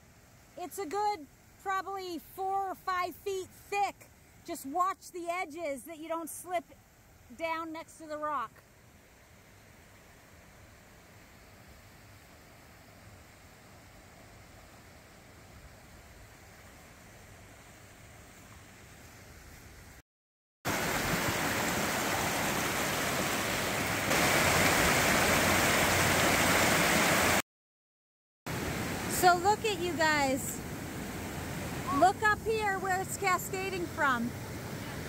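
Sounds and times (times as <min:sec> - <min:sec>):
faint steady hiss: 0:00.0 - 0:20.0
creek rushing over rocks: 0:20.7 - 0:27.4.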